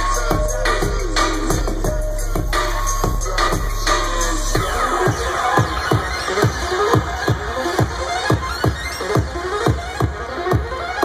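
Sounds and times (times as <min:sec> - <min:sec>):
deep held bass: 0:00.0 - 0:08.0
steady kick-drum beat: 0:00.0 - 0:11.0
wavering synth line: 0:01.8 - 0:09.3.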